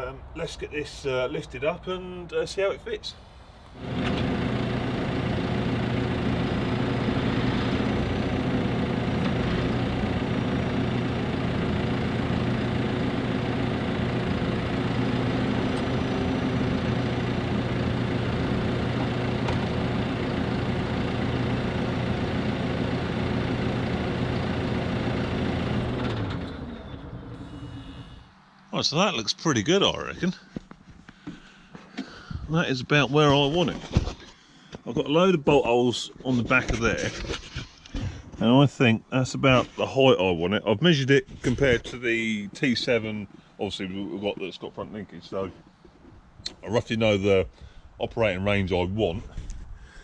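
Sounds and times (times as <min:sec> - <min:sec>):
diesel engine running: 0:03.7 - 0:28.4.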